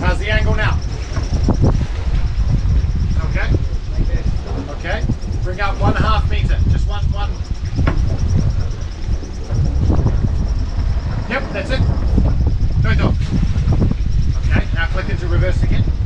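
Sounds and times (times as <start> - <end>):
diesel engine rumbling: 2.3 - 16.0.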